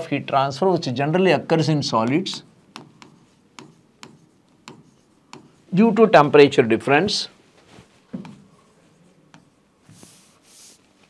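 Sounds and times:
pen scratching strokes: 2.0 - 5.8, 8.2 - 11.0.

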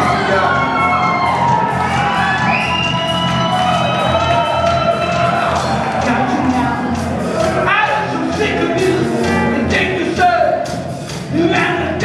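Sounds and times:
crowd cheering: 0.0 - 10.7.

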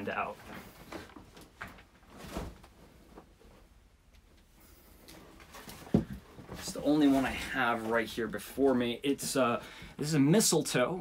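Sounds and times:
rustling of person moving: 0.0 - 10.8.

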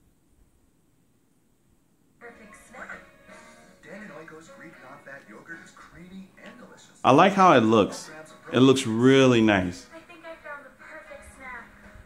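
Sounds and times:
voice over music from television: 2.2 - 12.0.

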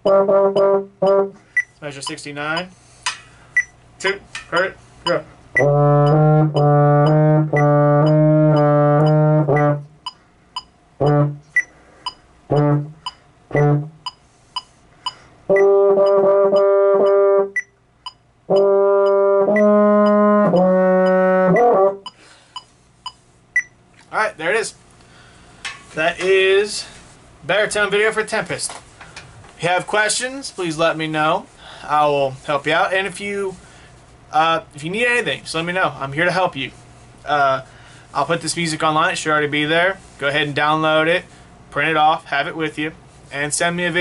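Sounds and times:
baritone horn playing: 0.0 - 1.4, 5.6 - 10.0, 11.0 - 11.5, 12.5 - 14.0, 15.5 - 17.6, 18.5 - 22.1
metronome ticking: 0.0 - 2.7, 3.6 - 23.7.

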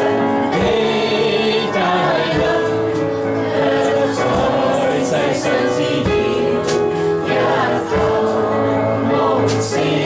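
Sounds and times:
choir-like singing: 0.0 - 10.0
sustained keyboard chords: 0.0 - 10.0.

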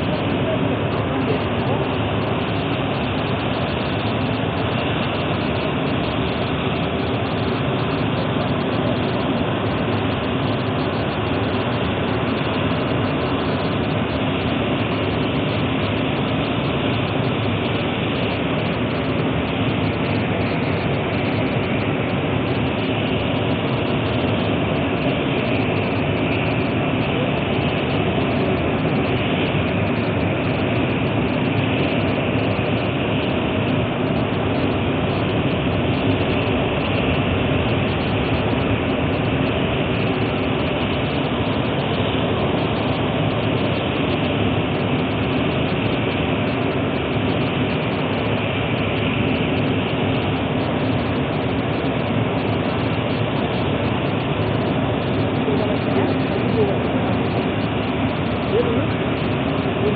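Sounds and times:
large machine droning: 0.0 - 59.9.

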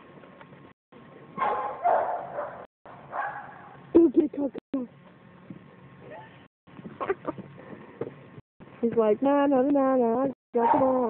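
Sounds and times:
dog barking: 1.4 - 3.8.

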